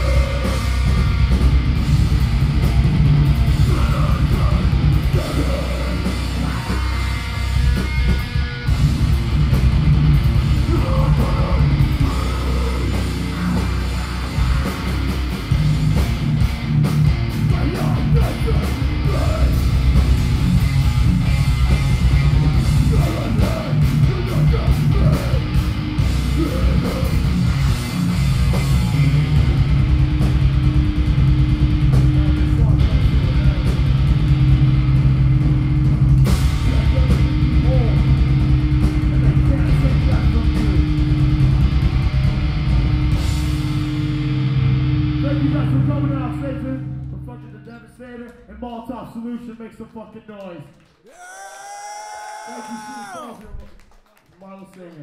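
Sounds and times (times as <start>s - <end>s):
fast drumming: 0.0s - 7.0s, 7.6s - 12.8s, 13.6s - 43.4s
distorted electric guitars: 0.0s - 47.2s
bass guitar: 0.0s - 47.5s.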